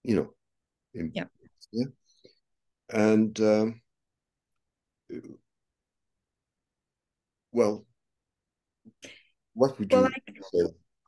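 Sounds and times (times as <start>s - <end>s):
person speaking a syllable: 9.8s - 10.6s.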